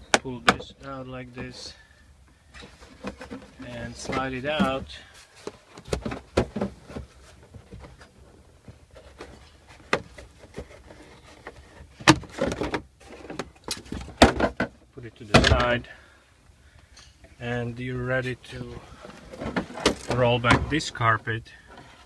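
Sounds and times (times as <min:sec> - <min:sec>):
plastic scraping: 0:18.8 - 0:20.9.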